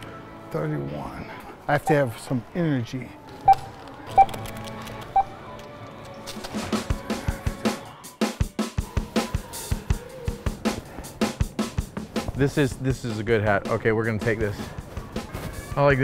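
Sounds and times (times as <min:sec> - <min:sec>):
background music with steady beat: 0:03.1 - 0:16.0
barcode scanner beeps: 0:03.5 - 0:04.4, 0:05.1 - 0:05.3.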